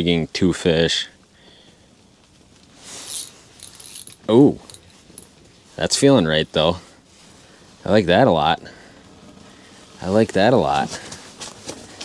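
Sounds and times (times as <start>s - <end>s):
soft rustle: 1.1s - 12.0s.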